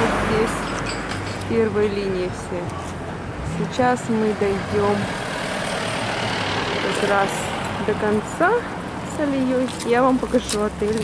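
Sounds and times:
car driving past: 3.3 - 8.0.

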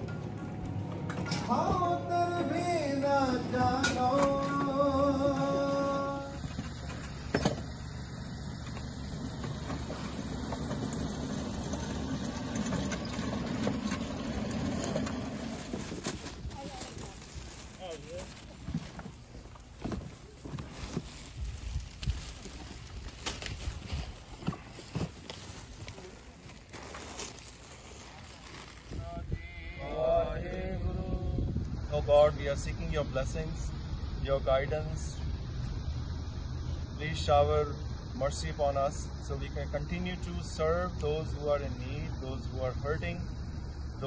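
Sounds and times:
pallet jack rolling on asphalt: 5.4 - 28.7.

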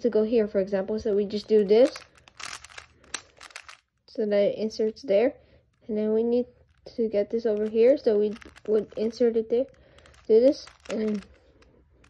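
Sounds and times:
plastic puzzle cube clicking: 1.3 - 3.9, 6.7 - 11.8.

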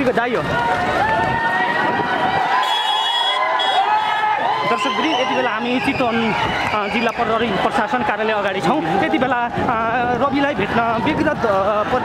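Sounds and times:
crowd shouting: 0.3 - 12.0.

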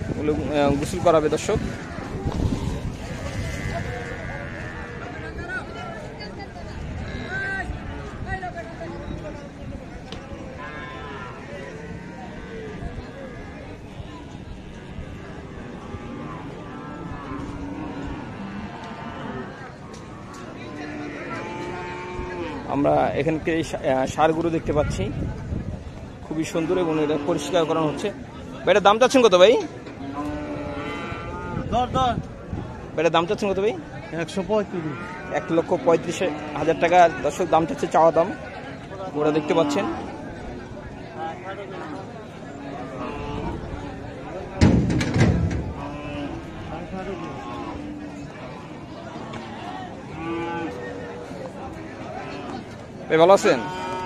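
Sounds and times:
voices: 0.0 - 54.0
cattle mooing: 1.8 - 5.1, 14.9 - 22.7, 30.0 - 31.7, 34.6 - 37.0, 39.2 - 40.2, 41.7 - 43.9, 45.5 - 51.0, 53.3 - 54.0
cow mooing: 20.3 - 22.7, 30.0 - 31.6, 45.6 - 50.9, 53.4 - 54.0.

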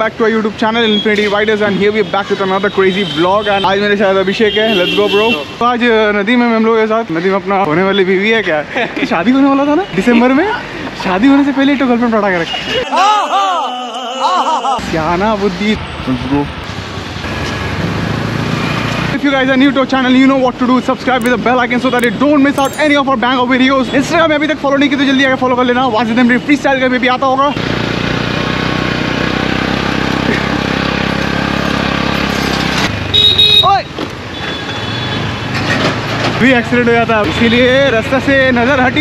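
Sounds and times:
street traffic: 0.0 - 39.0
wind and road noise: 27.6 - 39.0.

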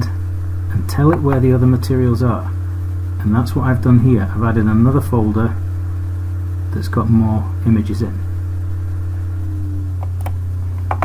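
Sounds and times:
low background hum: 0.0 - 11.0
faint high tone: 9.2 - 10.0.

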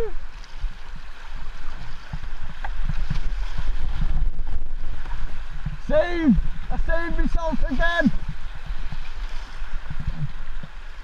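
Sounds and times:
low buffeting wind rumble: 0.0 - 11.0
water splashes: 0.0 - 11.0
whitewater rushing: 0.0 - 11.0.

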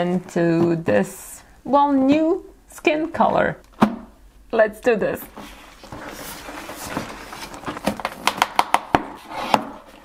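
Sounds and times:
cardboard box rubbing and sliding: 5.4 - 7.6
cardboard flap tearing with snaps: 7.8 - 9.7.

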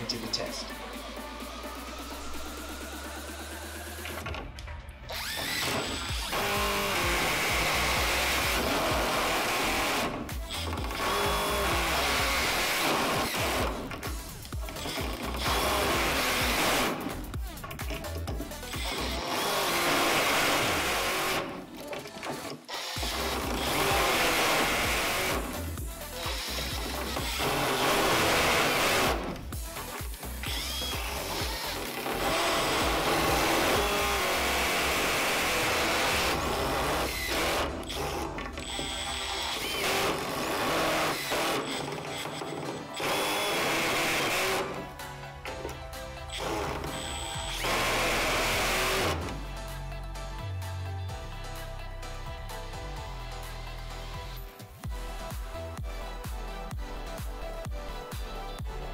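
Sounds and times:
impact drivers driving screws into wood: 4.0 - 49.4.

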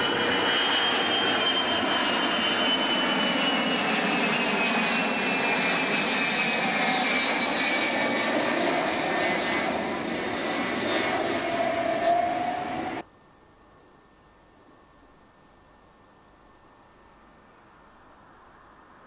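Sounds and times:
jet airliner roaring overhead: 0.0 - 13.0.

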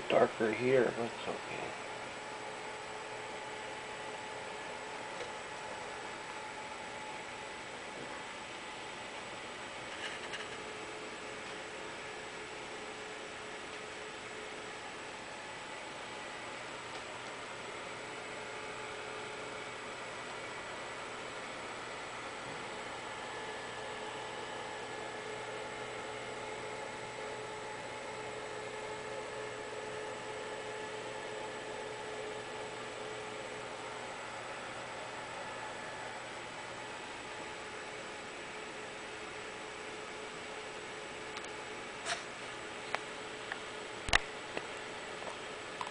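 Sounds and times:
faint hum tones: 0.0 - 45.9.

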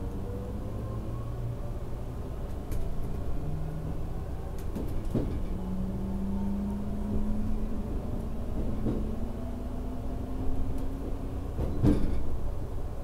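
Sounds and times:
train running rumble: 1.6 - 13.0
wheels clacking over rail joint: 10.8 - 12.4.

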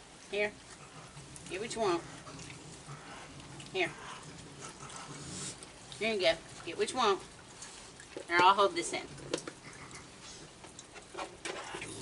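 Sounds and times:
animals chewing: 0.0 - 12.0.

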